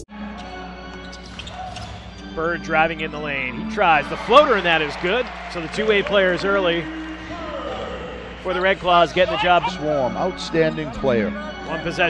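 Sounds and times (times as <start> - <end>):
electronic music: 0.0 - 12.0
crowd murmur: 5.3 - 10.2.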